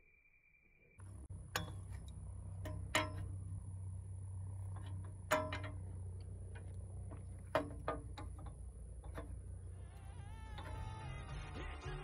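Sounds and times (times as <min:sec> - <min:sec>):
wrench clinking on metal: 0:01.0 - 0:03.6, 0:04.6 - 0:11.2
steady low hum: 0:01.0 - 0:12.0.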